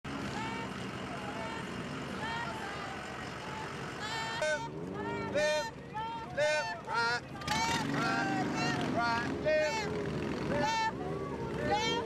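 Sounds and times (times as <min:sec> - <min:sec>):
vehicles running slowly: 0:00.0 - 0:12.0
faint voices: 0:00.1 - 0:12.0
loud shouted calls: 0:00.3 - 0:12.0.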